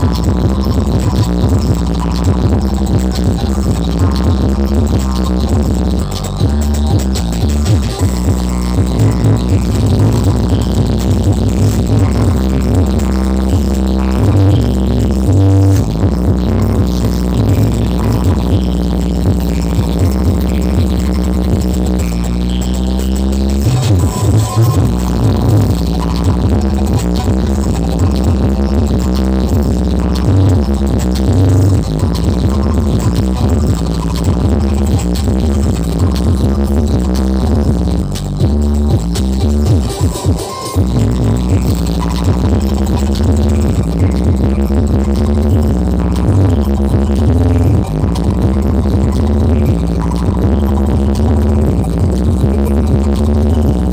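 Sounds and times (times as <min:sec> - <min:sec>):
electronic dance music with heavy bass: 0:00.0 - 0:53.9.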